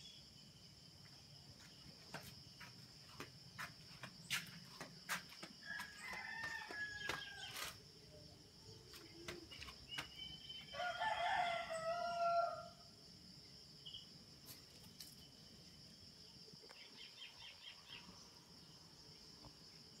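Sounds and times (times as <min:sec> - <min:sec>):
crickets droning: 0:00.0 - 0:20.0
rooster crowing: 0:05.6 - 0:07.7, 0:10.7 - 0:12.8.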